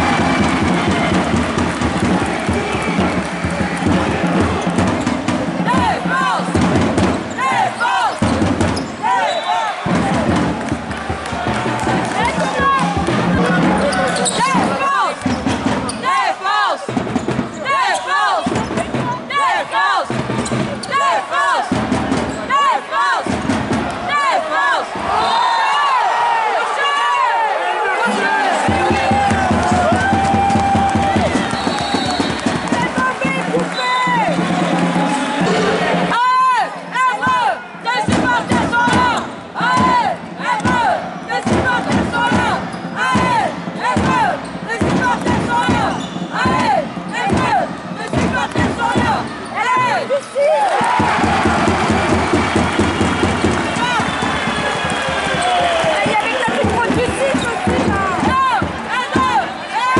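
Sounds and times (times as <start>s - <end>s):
sneakers squeaking on hardwood: 7.2s - 9.1s, 13.8s - 16.0s, 42.7s - 43.0s, 45.7s - 47.5s
basketball bouncing: 50.9s - 59.4s.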